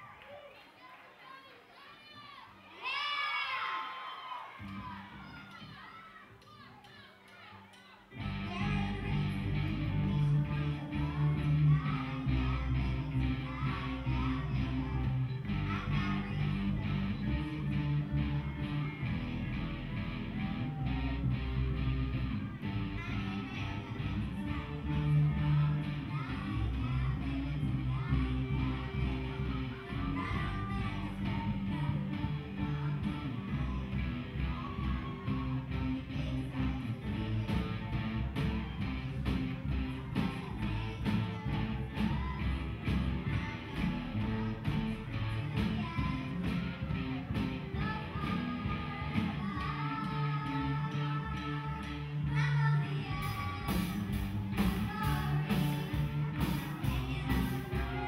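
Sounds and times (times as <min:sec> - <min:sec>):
rock band playing: 0:08.2 - 0:58.0
girl singing into a microphone: 0:08.4 - 0:17.8, 0:22.9 - 0:38.0, 0:39.9 - 0:58.0.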